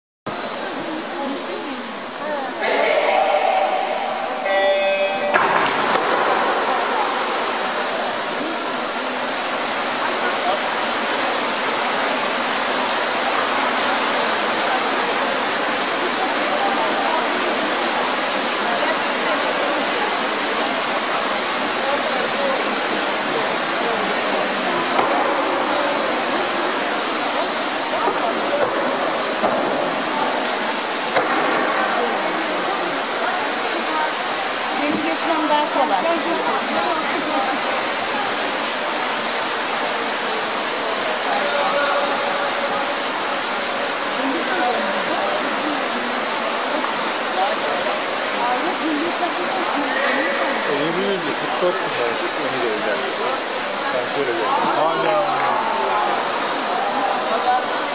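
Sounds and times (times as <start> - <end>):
spectators shouting and cheering: 2.2 - 9.2, 54.0 - 57.9
electronic start tone: 2.6 - 5.6
swimmers hitting water: 2.6 - 9.2, 23.8 - 33.0.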